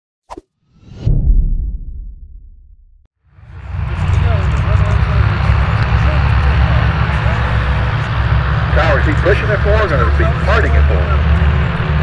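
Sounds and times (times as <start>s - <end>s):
whoosh into deep boom: 0.6s - 3.1s.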